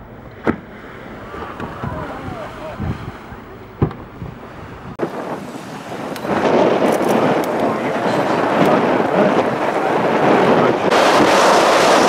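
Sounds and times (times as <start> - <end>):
boat noise: 0.0 - 12.0
wind: 0.0 - 12.0
whale tail slapping water: 0.3 - 12.0.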